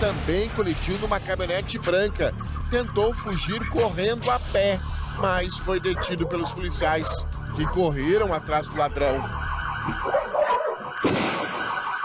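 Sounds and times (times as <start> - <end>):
electronic warning siren warbling: 0.8 - 12.0.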